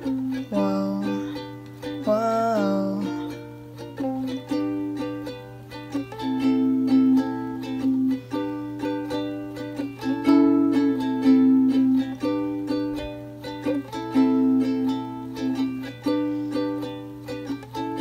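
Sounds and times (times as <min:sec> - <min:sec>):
steady low hum: 0:00.0 - 0:18.0
ukulele strumming chords: 0:00.0 - 0:18.0.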